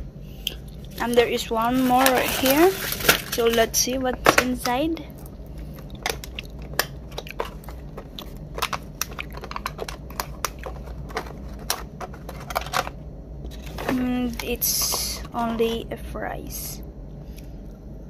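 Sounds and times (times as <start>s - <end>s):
aluminium foil crackling: 0.7s - 15.6s.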